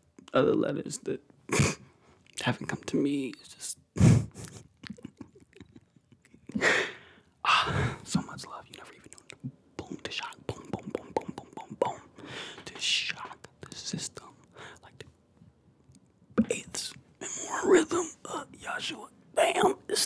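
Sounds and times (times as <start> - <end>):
man whispering breathily: 7.4 - 15.2, 16.4 - 20.0
mouth clicks: 8.8 - 12.1.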